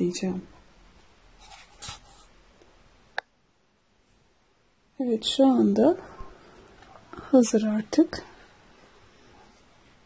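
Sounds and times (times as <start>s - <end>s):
faint rustling scrapes: 1.0s - 2.4s, 6.0s - 10.0s.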